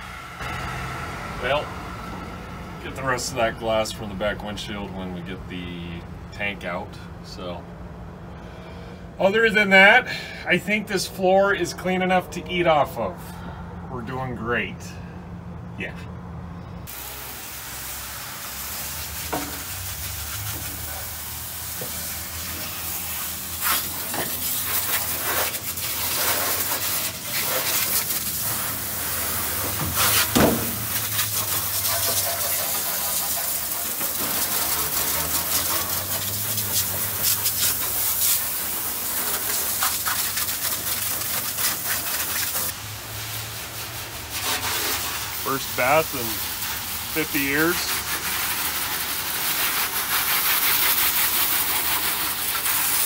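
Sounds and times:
hose spray hissing: 16.9s - 53.0s
water spattering on metal: 16.9s - 53.0s.

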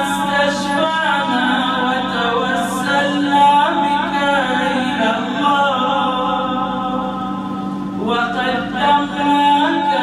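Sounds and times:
religious chanting through microphone: 0.0s - 10.0s.

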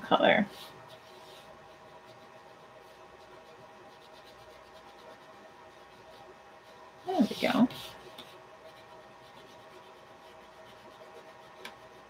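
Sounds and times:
crayon scratching on paper: 0.5s - 12.0s.

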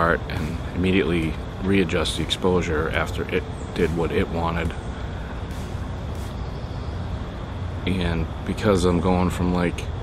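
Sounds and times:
low rumbling background noise: 0.0s - 10.0s
brief hisses: 5.4s - 6.6s.

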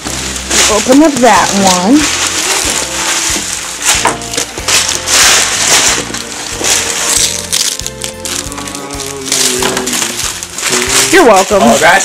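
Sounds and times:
background music: 0.0s - 12.0s
wrapping paper tearing: 0.0s - 12.0s.

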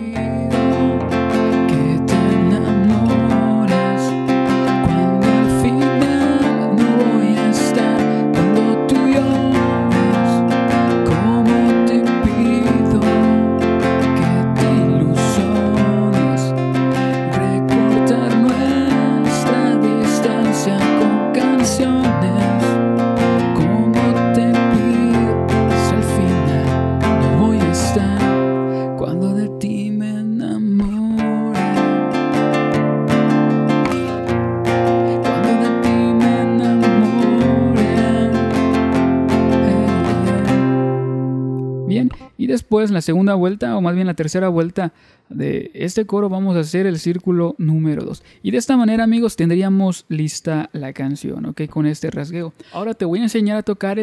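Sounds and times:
classical guitar strumming chords: 0.0s - 42.5s.

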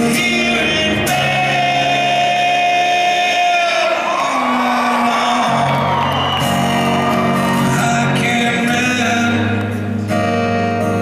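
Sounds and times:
man singing long notes: 0.0s - 6.0s, 7.4s - 9.8s
acoustic guitar strumming: 0.0s - 11.0s.

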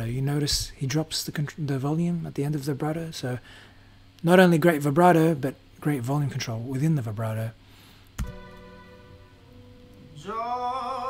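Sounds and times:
sustained accompaniment chord: 8.2s - 11.0s
person singing: 10.0s - 11.0s.

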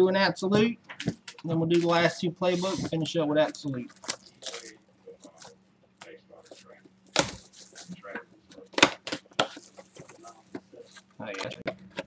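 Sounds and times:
low murmured talk: 4.5s - 6.9s.

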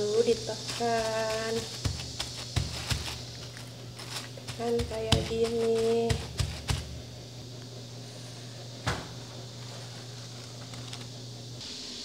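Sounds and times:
plastic sheet crinkling: 0.0s - 6.9s
hand patting dough: 0.1s - 7.0s.

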